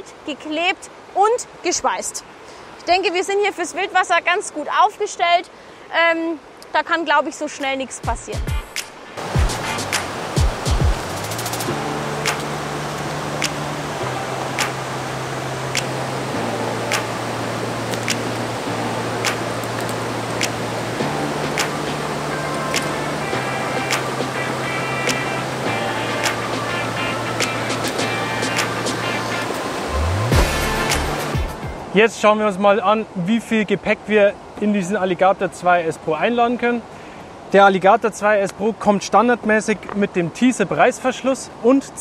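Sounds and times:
river rushing: 0.0s - 42.0s
music with beat and bass: 8.1s - 11.7s, 22.6s - 31.9s.

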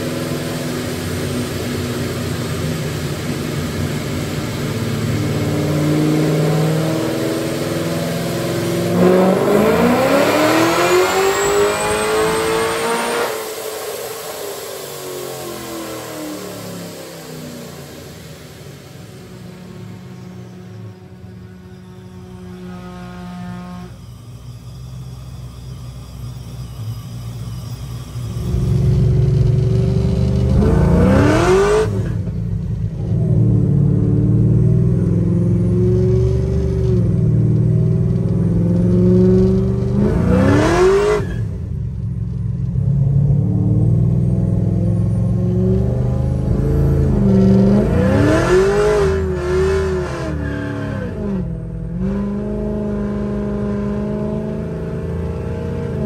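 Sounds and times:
car engine accelerating hard: 0.0s - 24.0s, 28.2s - 56.0s.

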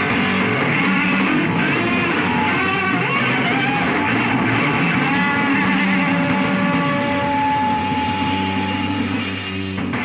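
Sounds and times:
bass guitar sustained notes: 0.0s - 10.0s
distorted electric guitar: 0.0s - 10.0s.

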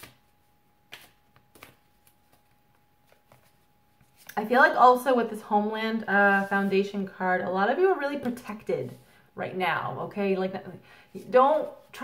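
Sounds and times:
cards shuffling: 0.0s - 4.4s.

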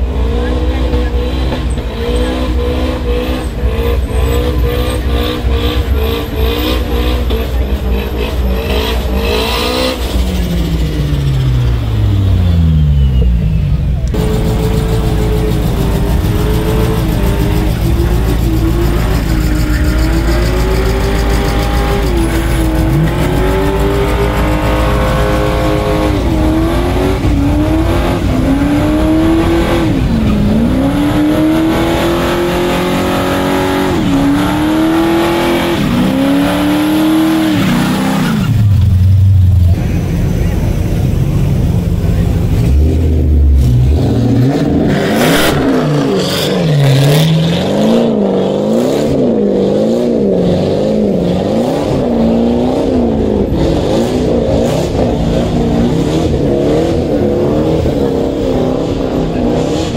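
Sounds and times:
car engine revving: 0.0s - 59.9s.

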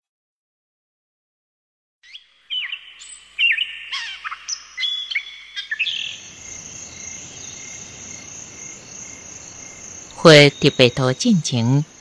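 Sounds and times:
birds chirping and singing: 2.0s - 11.2s.

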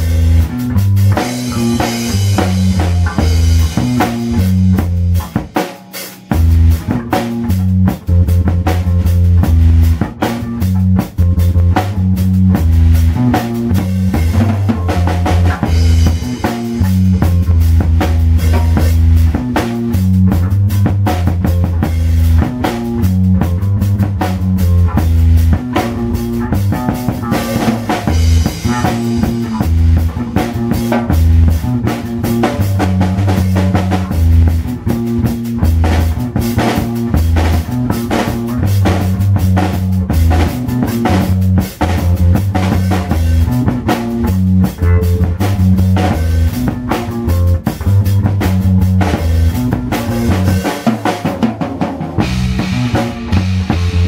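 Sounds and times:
drum kit playing: 0.0s - 54.0s
electric bass guitar: 0.0s - 54.0s.

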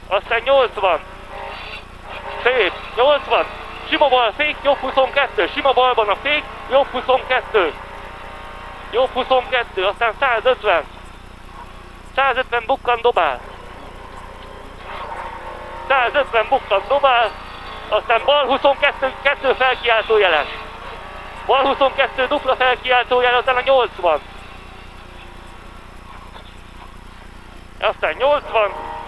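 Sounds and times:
rally car engine running hard: 0.0s - 29.0s
road noise: 0.0s - 29.0s.

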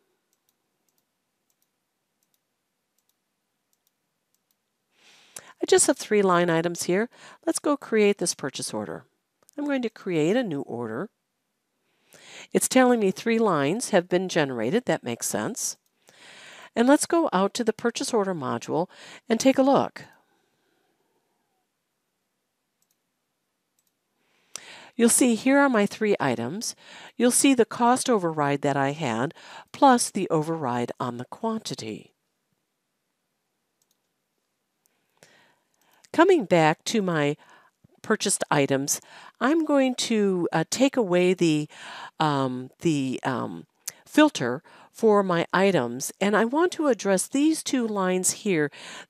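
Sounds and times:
faint computer mouse clicks: 0.3s - 2.4s, 3.0s - 4.7s, 22.8s - 23.0s, 23.8s - 24.0s, 33.8s - 34.2s.

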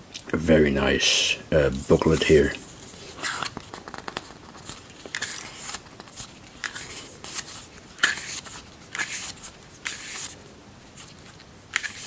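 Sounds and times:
pages turning: 1.7s - 12.0s.

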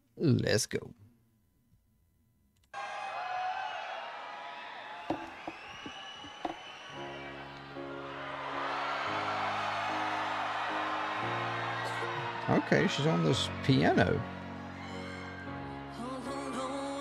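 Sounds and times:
crowd cheering: 2.7s - 17.0s
people clapping: 2.8s - 15.3s
whistles: 3.6s - 7.6s
slow piano chords: 6.9s - 17.0s.

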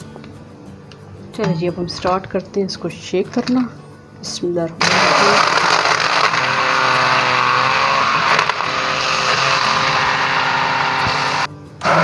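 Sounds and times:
electric hand blender running: 4.8s - 12.0s.

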